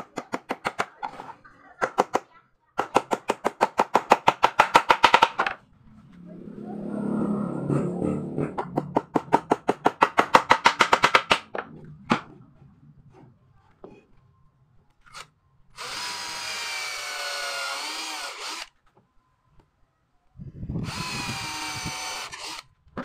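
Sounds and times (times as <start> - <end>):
hammer nailing into wood: 2.8 - 5.6, 8.6 - 11.6.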